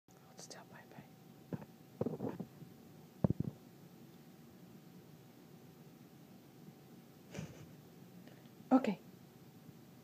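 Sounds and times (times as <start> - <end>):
person whispering: 0.2 - 1.1.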